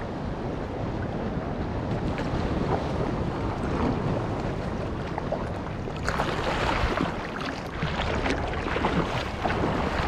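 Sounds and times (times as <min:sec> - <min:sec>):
wind on microphone: 0:00.0 - 0:10.0
water sloshing and lapping: 0:01.4 - 0:10.0.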